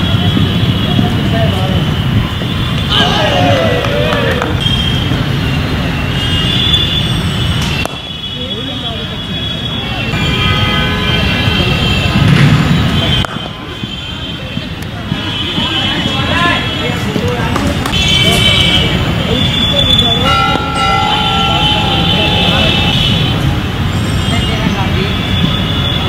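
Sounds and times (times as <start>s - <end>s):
voices of players and onlookers: 0.0s - 7.1s, 7.8s - 26.0s
outdoor background noise: 0.0s - 26.0s.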